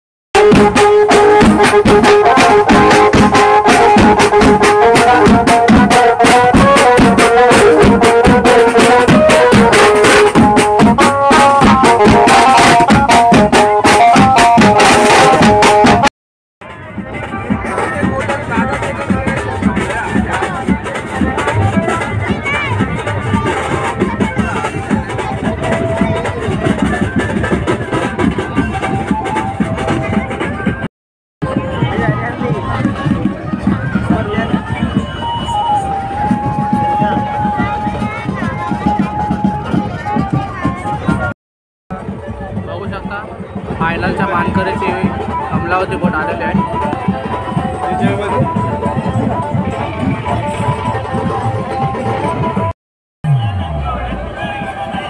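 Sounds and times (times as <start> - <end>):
loud melody line: 0.4 - 41.3
street band drums and cymbals: 0.4 - 41.3, 41.9 - 55.0.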